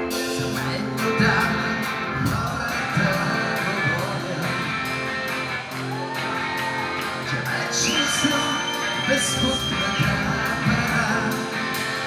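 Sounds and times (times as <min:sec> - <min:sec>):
electric bass: 0:00.0 - 0:12.0
electric guitar: 0:00.0 - 0:12.0.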